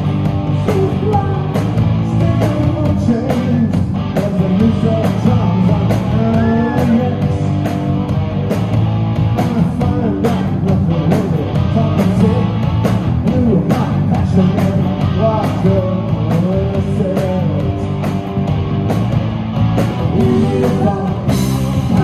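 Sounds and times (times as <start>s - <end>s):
punk rock band playing: 0.0s - 22.0s
person singing: 0.5s - 7.5s, 20.0s - 22.0s.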